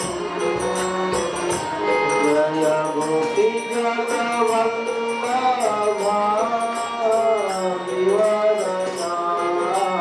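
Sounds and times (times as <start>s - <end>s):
light percussion strikes: 0.0s - 10.0s
man chanting prayers: 0.0s - 10.0s.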